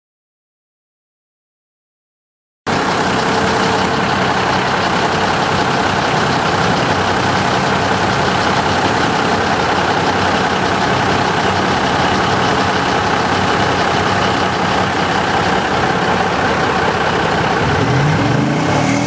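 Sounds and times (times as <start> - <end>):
suv engine running steadily: 2.7 - 19.0.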